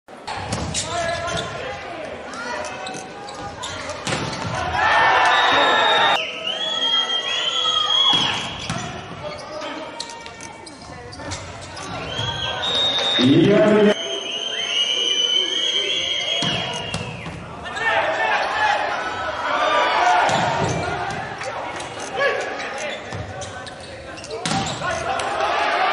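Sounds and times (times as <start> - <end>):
volleyball hitting hard floor: 20.3 - 21.2.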